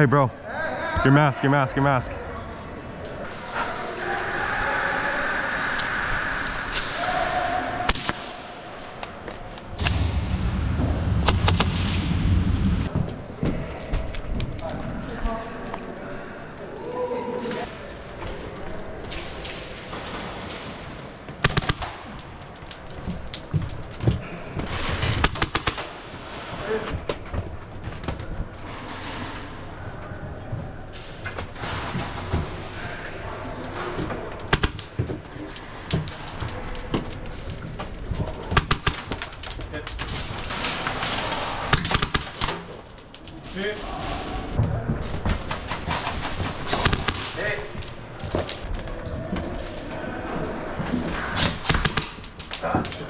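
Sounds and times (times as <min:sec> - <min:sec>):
airsoft guns firing bursts: 0:21.4 - 0:22.0, 0:41.7 - 0:42.6, 0:45.7 - 0:47.4.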